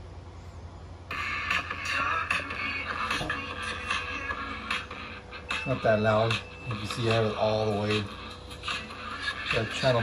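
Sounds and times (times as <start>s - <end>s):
steady low hum: 0.0s - 10.0s
thin music through one speaker: 0.0s - 10.0s.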